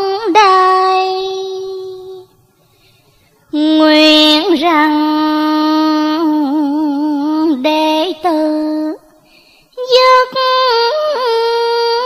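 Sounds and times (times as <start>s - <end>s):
high solo voice singing: 0.0s - 2.4s, 3.5s - 9.1s, 9.8s - 12.0s.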